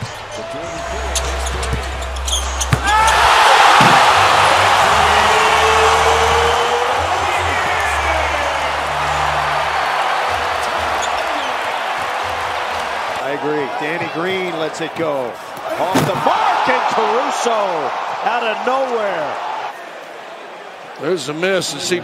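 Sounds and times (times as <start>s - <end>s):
music: 0.0s - 11.5s
arena crowd roaring: 0.0s - 21.0s.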